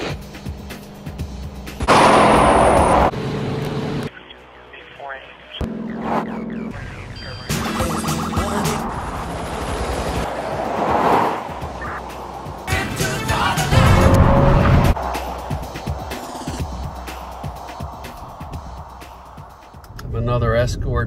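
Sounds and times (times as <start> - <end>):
music: 0.0 - 2.5, 6.7 - 9.0, 11.5 - 21.0
road sound: 0.0 - 20.4
loud rushing noise burst: 1.8 - 3.1.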